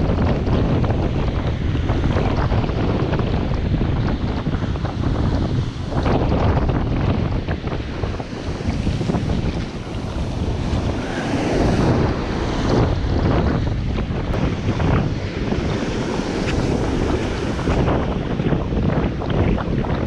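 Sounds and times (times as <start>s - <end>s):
wind buffeting microphone: 0.0s - 20.0s
ocean surf breaking: 1.5s - 20.0s.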